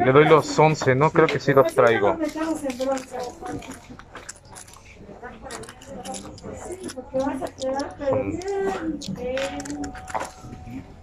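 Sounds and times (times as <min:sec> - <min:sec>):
quiet voices talking: 0:00.0 - 0:11.0.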